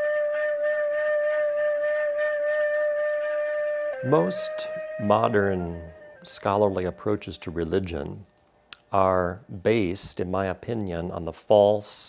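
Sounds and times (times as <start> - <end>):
long steady flute note: 0.0 - 7.6
faint musical backing: 0.0 - 11.0.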